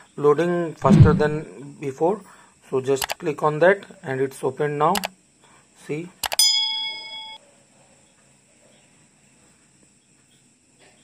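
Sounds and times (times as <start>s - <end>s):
quick clicks: 6.2s - 6.4s
bright bell ding: 6.3s - 7.4s.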